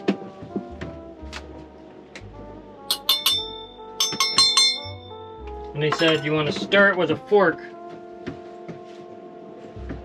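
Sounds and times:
background music: 0.0 - 10.0
metal cup clinking: 2.9 - 5.2, 5.9 - 6.5.

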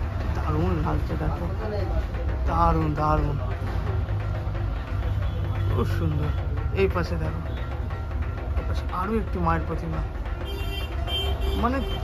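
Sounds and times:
traffic rumble: 0.0 - 12.0
vehicle horn: 10.4 - 12.0.

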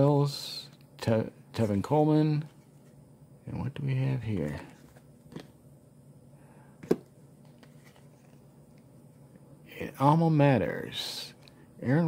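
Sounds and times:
trading cards shuffling: 4.5 - 5.6, 6.9 - 8.5.

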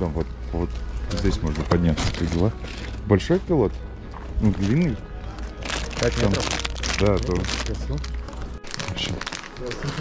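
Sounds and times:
music: 0.0 - 10.0
plastic bag crinkling: 4.6 - 10.0.

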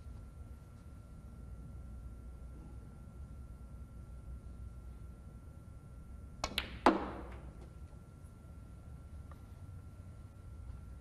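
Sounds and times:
cue tip tapping ball: 6.4 - 7.6
snooker balls clicking: 6.4 - 7.8
balls rolling faint clicks: 6.4 - 8.0, 9.2 - 9.6.

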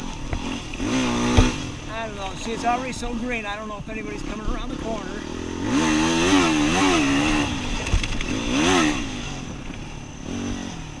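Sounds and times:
motorcycle engine revving: 0.0 - 11.0
sharp knock: 1.3 - 1.6.

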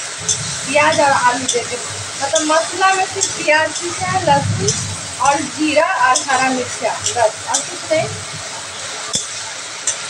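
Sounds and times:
food sizzling in hot oil: 0.0 - 10.0.

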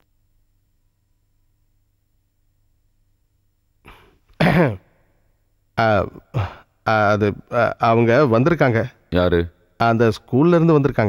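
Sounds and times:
man clearing his throat: 3.9 - 4.9, 6.2 - 6.7.

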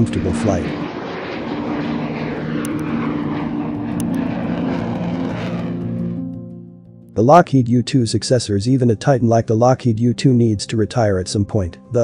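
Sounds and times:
jet engine rushing overhead: 0.0 - 6.6
background music low notes: 1.8 - 12.0.

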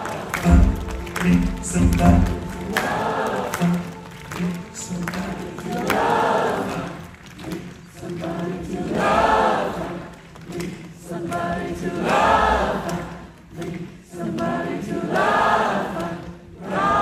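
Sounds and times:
concert audience singing: 0.0 - 17.0.

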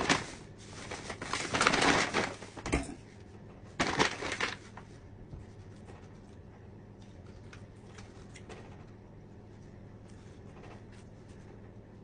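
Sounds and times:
rustling crinkling handling noise: 0.0 - 11.6.

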